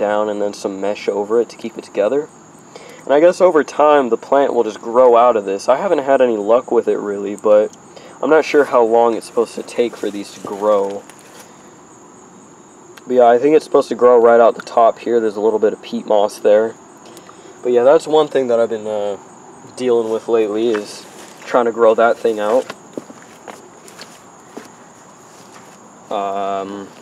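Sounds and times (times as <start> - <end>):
crickets trilling: 0.0 - 27.0
low hiss: 0.0 - 27.0
faint scuffs or knocks: 9.5 - 11.6, 20.0 - 26.2.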